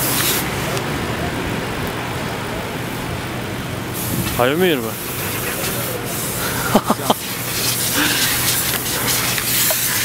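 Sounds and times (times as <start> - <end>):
outdoor traffic noise: 0.0 - 10.0
vehicle engine idling: 0.0 - 10.0.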